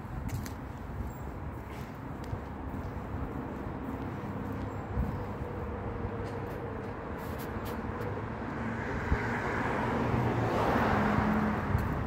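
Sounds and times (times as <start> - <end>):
car driving past: 8.5 - 11.7.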